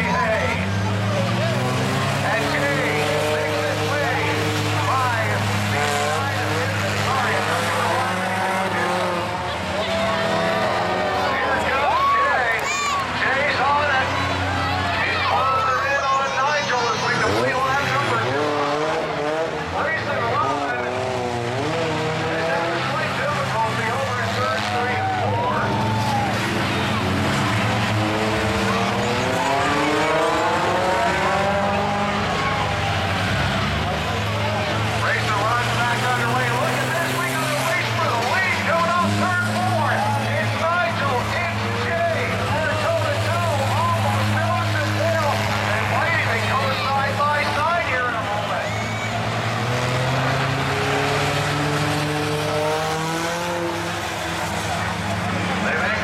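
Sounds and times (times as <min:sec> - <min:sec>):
crowd chatter: 0:00.0 - 0:56.0
race car engines revving: 0:00.0 - 0:56.0.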